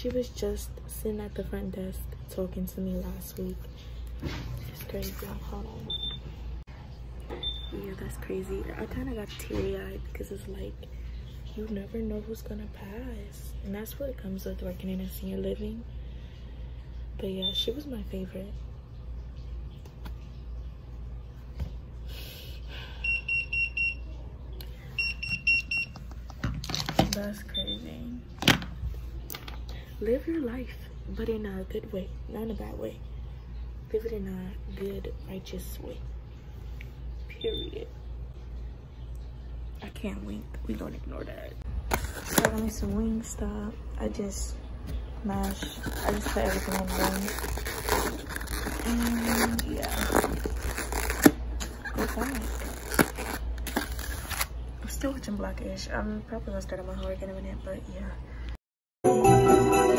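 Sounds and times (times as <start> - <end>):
rustling handling noise: 45.3 - 54.5.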